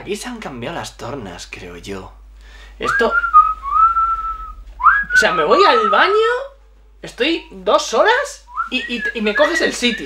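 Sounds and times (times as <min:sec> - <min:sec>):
man whistling a wavering note: 0:02.8 - 0:06.1.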